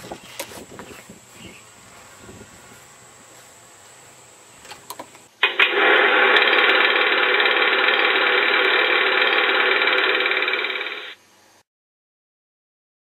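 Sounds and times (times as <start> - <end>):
motor running loudly: 5.4 - 11.2.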